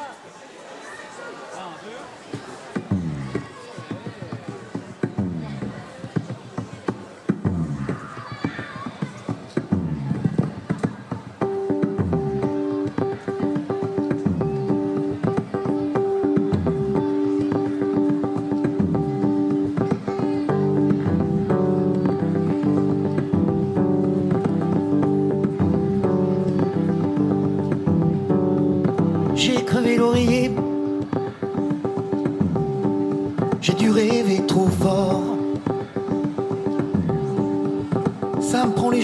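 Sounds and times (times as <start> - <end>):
electric bass guitar: 2.9 - 3.4, 5.2 - 5.8, 7.4 - 8.0, 9.7 - 10.4, 11.5 - 38.8.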